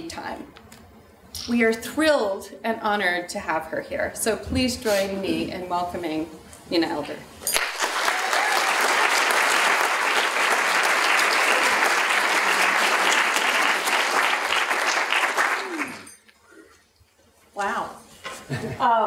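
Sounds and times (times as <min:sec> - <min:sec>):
audience applauding: 0:07.5 - 0:16.2.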